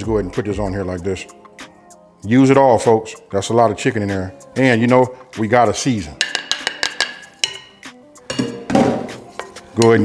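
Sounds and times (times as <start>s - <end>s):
wooden spoon knocking on plate: 6.2s - 9.9s.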